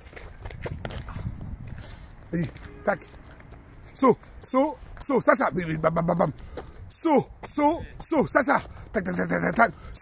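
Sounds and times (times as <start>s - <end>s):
quick footsteps on rubber track: 0.0s - 10.0s.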